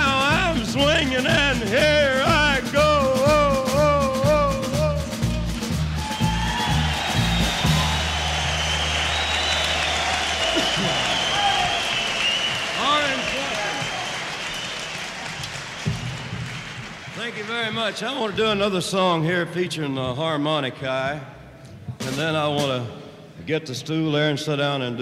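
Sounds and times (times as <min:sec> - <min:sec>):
man singing with vibrato: 0:00.0 - 0:05.7
country band playing: 0:00.0 - 0:11.9, 0:22.0 - 0:22.9
crowd applauding and cheering: 0:05.2 - 0:19.0.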